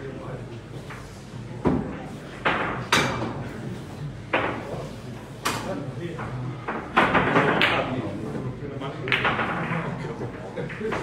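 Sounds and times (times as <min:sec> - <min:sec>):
voices in a room: 0:00.0 - 0:11.0
billiard balls clacking: 0:04.3 - 0:11.0.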